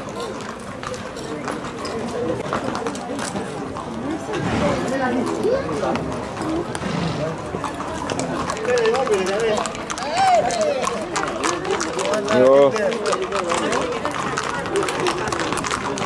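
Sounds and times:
horse hooves on pavement: 0.0s - 16.0s
people talking and calling out: 0.0s - 16.0s.

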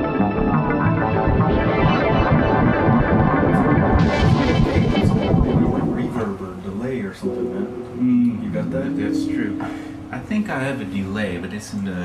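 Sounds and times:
synthesizer music: 0.0s - 6.6s, 7.2s - 11.5s
hissing noise: 3.5s - 6.9s.

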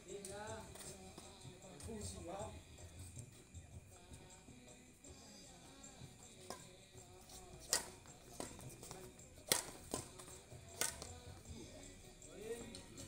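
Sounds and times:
background music: 0.0s - 13.0s
rackets hitting shuttlecock: 7.6s - 11.4s.

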